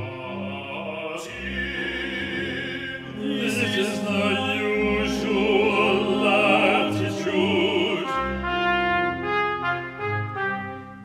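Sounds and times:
brass held chords: 0:00.0 - 0:11.0.

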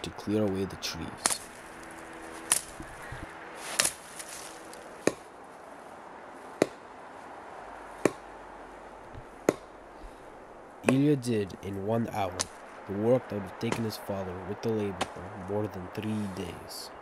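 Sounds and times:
axe chopping wood: 0:01.2 - 0:01.5, 0:03.7 - 0:04.0, 0:05.0 - 0:05.3, 0:06.6 - 0:06.9, 0:08.0 - 0:08.3, 0:09.2 - 0:09.8, 0:10.8 - 0:11.1, 0:13.6 - 0:13.9, 0:15.0 - 0:15.2.

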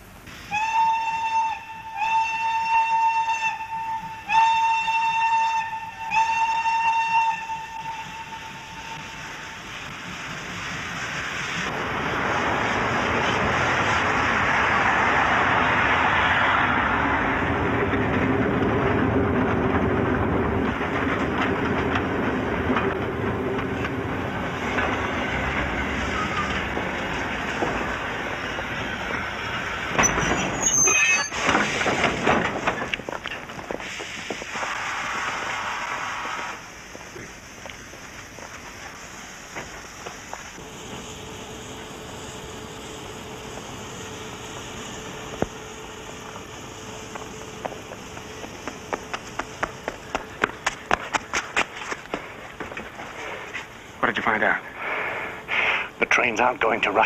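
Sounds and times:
train rumble and wheel clatter: 0:00.0 - 0:57.0
train whistle blasts: 0:00.5 - 0:09.7.

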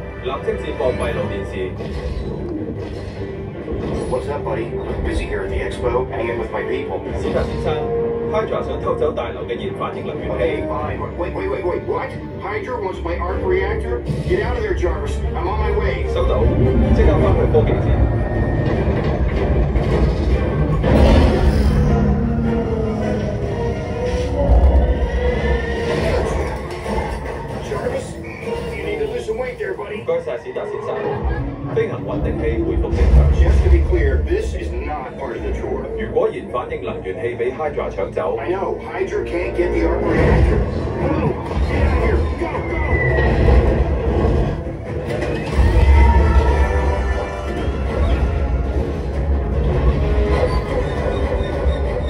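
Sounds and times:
deep loud rumble: 0:32.0 - 0:35.1.

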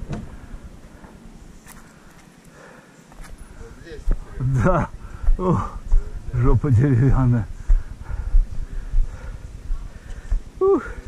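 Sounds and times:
wind rumble on microphone: 0:04.0 - 0:11.0
faint voice: 0:10.6 - 0:11.0.

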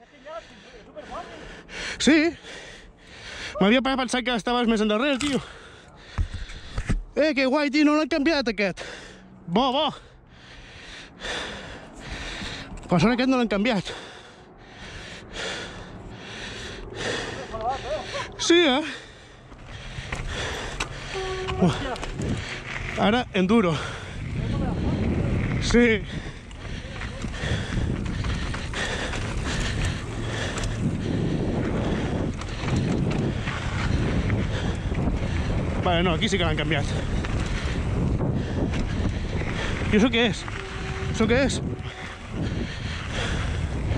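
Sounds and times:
person breathing hard: 0:00.0 - 0:03.6, 0:05.2 - 0:07.0, 0:08.8 - 0:12.9, 0:13.8 - 0:22.8, 0:23.7 - 0:25.4, 0:26.0 - 0:35.8, 0:36.9 - 0:39.9, 0:40.5 - 0:43.9
wind rushing: 0:14.4 - 0:43.9
tyre noise on dirt: 0:17.1 - 0:43.9.

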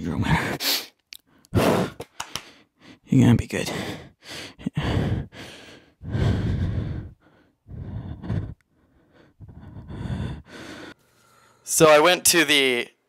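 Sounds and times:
man breathing heavily and sighing: 0:00.3 - 0:11.7.

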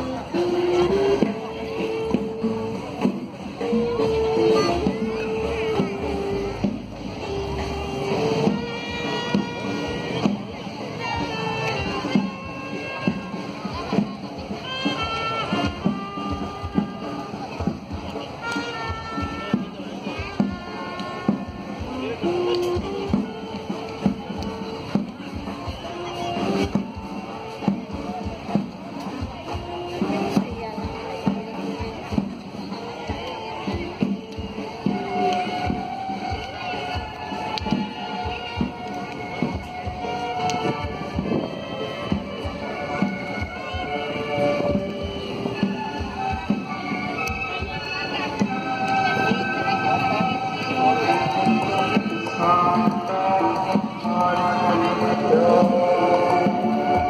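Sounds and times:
horn melody: 0:00.0 - 0:28.6, 0:29.4 - 0:57.0
crowd voices: 0:00.0 - 0:57.0
steady drum beat: 0:00.0 - 0:57.0.

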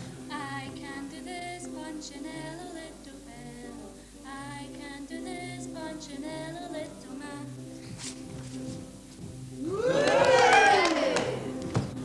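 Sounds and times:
girl singing: 0:00.3 - 0:07.8.

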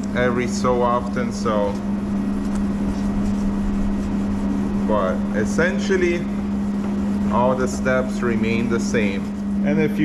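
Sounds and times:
machine hum: 0:00.0 - 0:10.0
wet sandpaper rasping on plastic: 0:07.3 - 0:09.7.

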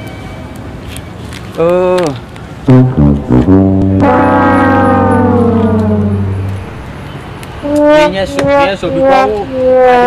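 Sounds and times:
sad trombone note: 0:02.7 - 0:06.9, 0:07.6 - 0:10.0.

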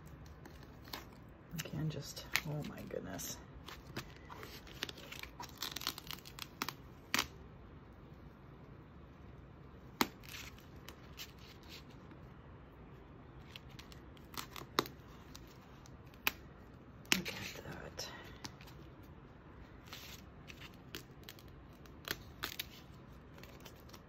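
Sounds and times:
tape crackling and snapping: 0:00.0 - 0:24.0.

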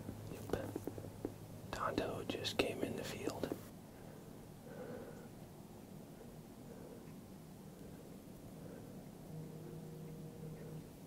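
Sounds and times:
man whispering: 0:00.3 - 0:00.8, 0:01.7 - 0:03.6.

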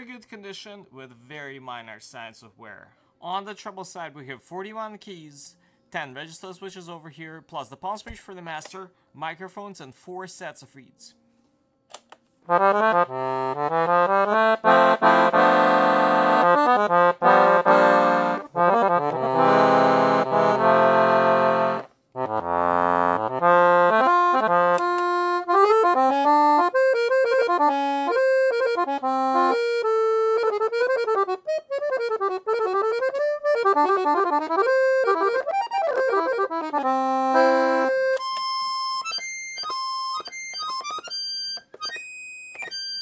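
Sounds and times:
piano accordion playing: 0:12.5 - 0:43.0.

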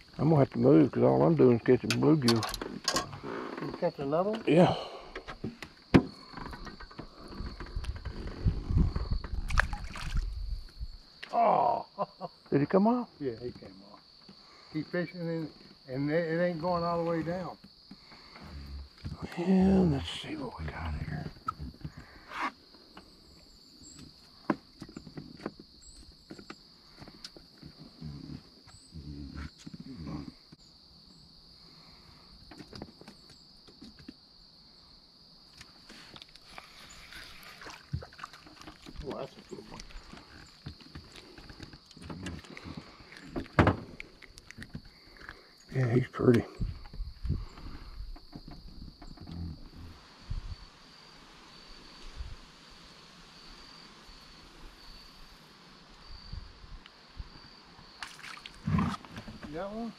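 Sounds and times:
high-pitched insect drone: 0:44.8 - 0:59.9.

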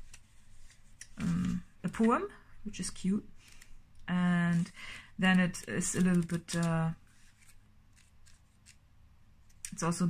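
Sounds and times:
cards scraping: 0:03.4 - 0:03.8, 0:04.4 - 0:08.8.

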